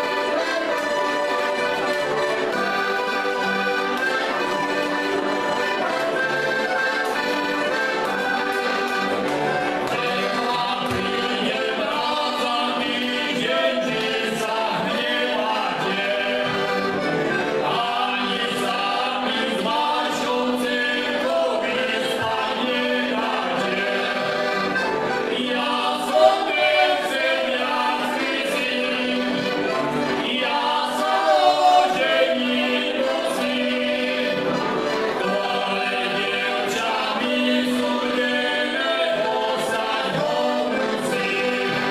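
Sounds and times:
button accordions playing folk tune: 0.0s - 41.9s
people singing in harmony: 0.0s - 41.9s.

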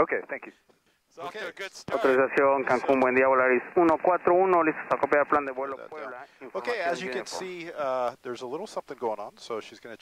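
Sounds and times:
faint radio clicks: 3.7s - 5.4s.

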